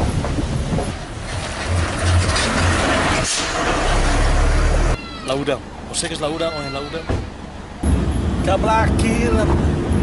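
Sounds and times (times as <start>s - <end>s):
heavy motor vehicle rumbling: 0.0s - 5.0s.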